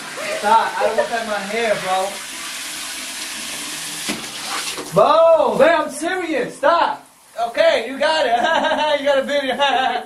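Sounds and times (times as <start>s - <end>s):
shower spraying water: 0.0s - 10.0s.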